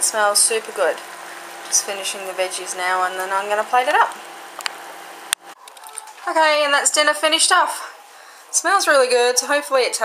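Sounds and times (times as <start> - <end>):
kitchen background hum: 0.0 - 10.0.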